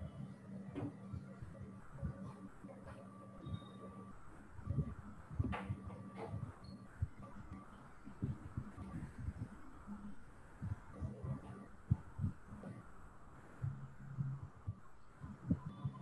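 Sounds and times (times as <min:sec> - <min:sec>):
low steady hum: 0:00.0 - 0:16.0
faint low thumps: 0:04.6 - 0:09.7.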